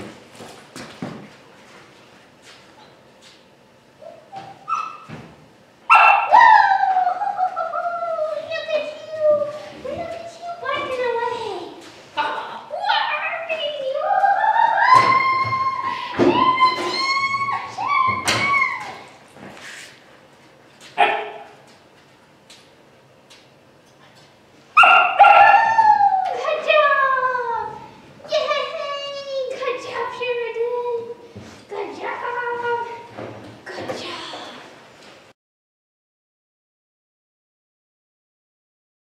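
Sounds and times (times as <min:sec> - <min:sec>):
puppy barking: 0:04.6 - 0:05.1, 0:05.9 - 0:06.6, 0:21.0 - 0:21.6, 0:24.8 - 0:25.8
puppy barking into long cry: 0:05.9 - 0:07.0, 0:24.8 - 0:26.3.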